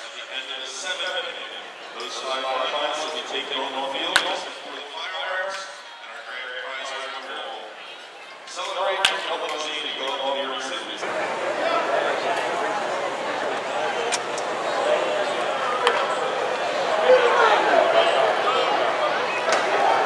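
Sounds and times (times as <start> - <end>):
crowd din: 0.0 - 20.0
public-address announcer speaking: 0.0 - 20.0.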